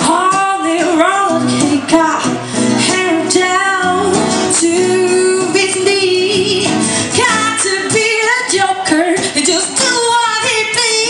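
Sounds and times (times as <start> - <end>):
strummed acoustic guitars: 0.0 - 11.0
woman singing into microphone: 0.0 - 11.0.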